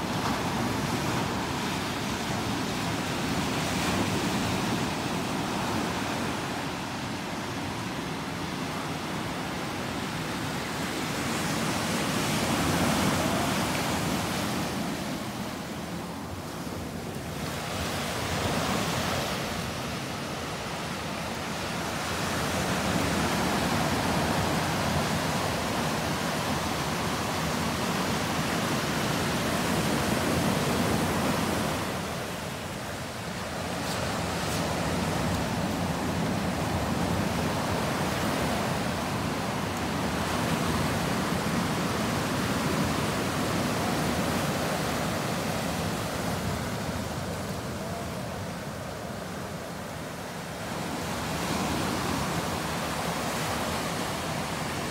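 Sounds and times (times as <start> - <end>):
ocean surf breaking on beach: 0.0 - 54.9.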